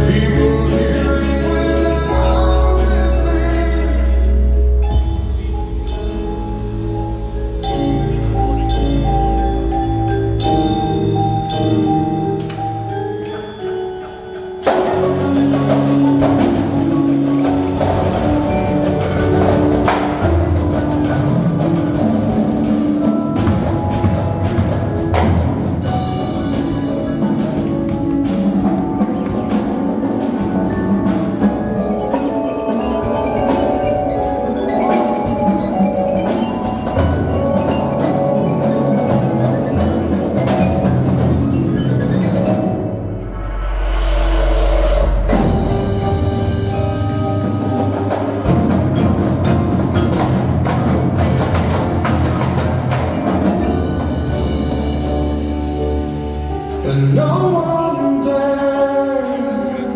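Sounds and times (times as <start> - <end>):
marimbas playing melody: 0.0 - 59.9
deep low swell with noisy wash: 43.1 - 46.6.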